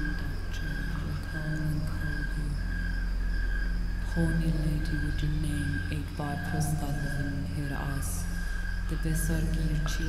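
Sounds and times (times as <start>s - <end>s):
low droning hum: 0.0s - 10.0s.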